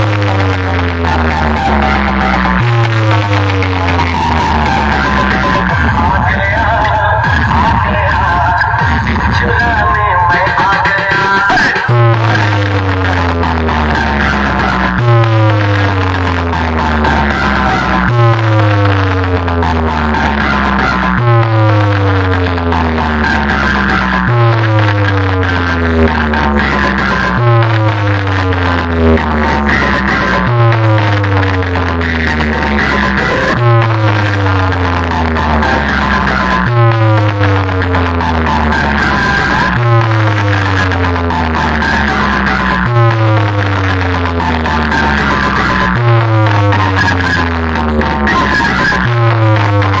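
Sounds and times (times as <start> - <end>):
deep bass hit sliding down: 0.0 - 9.8
bass-heavy dance music: 0.0 - 50.0.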